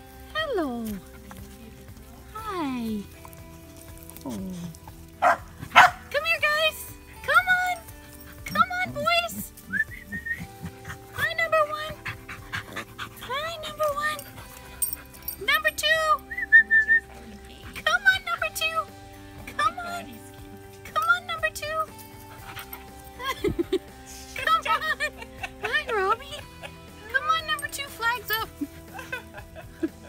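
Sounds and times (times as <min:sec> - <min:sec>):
music: 0:00.0 - 0:30.0
puppies yipping and squealing: 0:07.6 - 0:15.4, 0:22.0 - 0:24.0.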